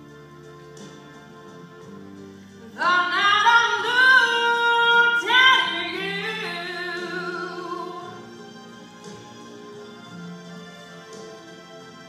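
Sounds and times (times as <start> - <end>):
quiet accompaniment track: 0.0 - 12.0
woman singing soul ballad: 2.7 - 8.2.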